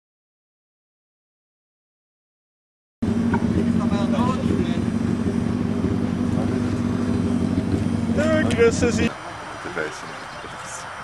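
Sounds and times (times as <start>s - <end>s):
car engine running: 3.0s - 10.0s
faint voices: 3.4s - 11.0s.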